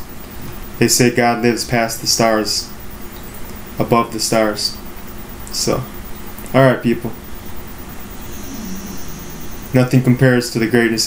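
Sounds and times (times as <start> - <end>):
faint high whine: 0.0 - 11.0
room noise hiss: 0.0 - 11.0.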